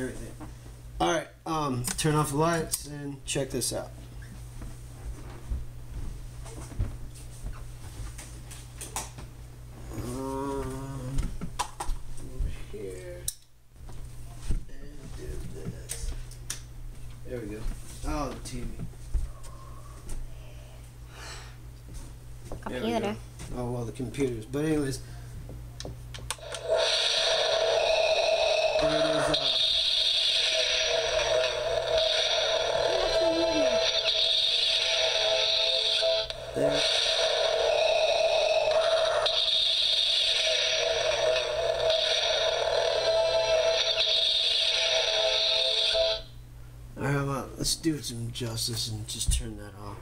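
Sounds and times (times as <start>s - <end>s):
steady low hum: 0.0s - 50.0s
radio speaker static hiss: 26.3s - 46.3s.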